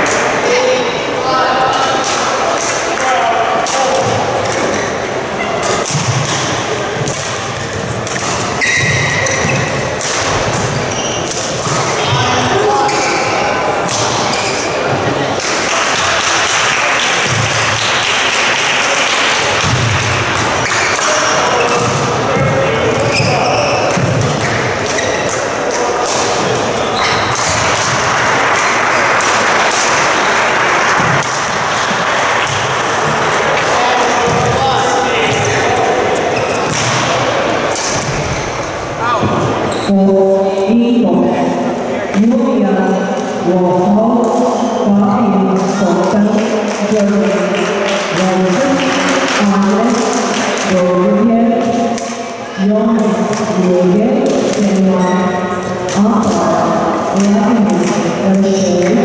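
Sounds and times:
voices: 0:00.0 - 0:59.0
racket hitting shuttlecock: 0:05.6 - 0:12.1, 0:13.8 - 0:14.6, 0:15.4 - 0:33.0, 0:36.4 - 0:38.4
footfalls on court floor: 0:30.9 - 0:37.2.

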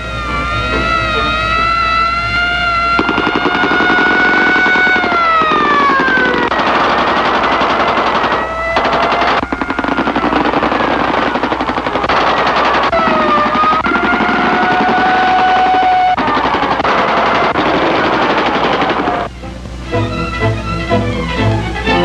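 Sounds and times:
wailing siren-like tone: 0:00.0 - 0:19.4
machine-gun fire: 0:03.0 - 0:19.3.

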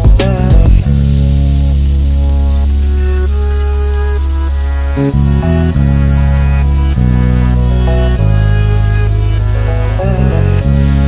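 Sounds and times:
slow background music chord: 0:00.0 - 0:11.0.

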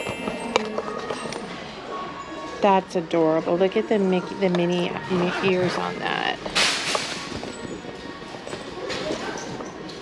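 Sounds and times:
shop ambience: 0:00.0 - 0:10.0.

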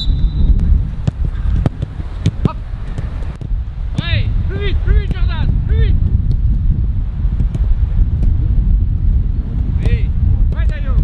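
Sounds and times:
wind buffeting microphone: 0:00.0 - 0:11.0
football being kicked: 0:00.5 - 0:05.5, 0:07.3 - 0:08.4, 0:09.7 - 0:11.0.

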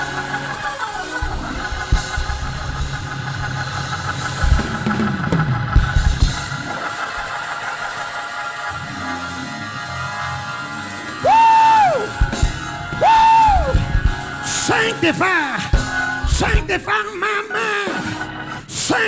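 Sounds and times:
worship music held chords: 0:00.0 - 0:19.0
drum hits: 0:01.2 - 0:07.4, 0:11.4 - 0:16.9.

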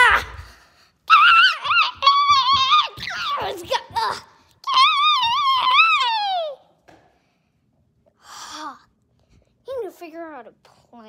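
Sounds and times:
child wailing: 0:01.1 - 0:06.7.

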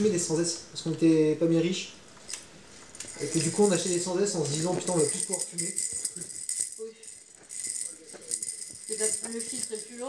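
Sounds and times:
toy rattle rattling: 0:03.0 - 0:10.0.

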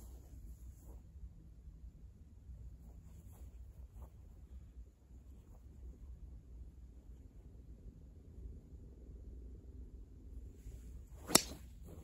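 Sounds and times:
golf club swing whoosh: 0:10.8 - 0:12.0
golf club striking ball: 0:11.2 - 0:11.7.

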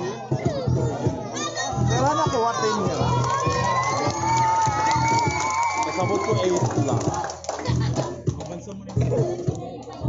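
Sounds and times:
crowd shouting and cheering: 0:00.0 - 0:08.3
background music with bass: 0:00.0 - 0:10.0
long high shout: 0:03.2 - 0:06.4.

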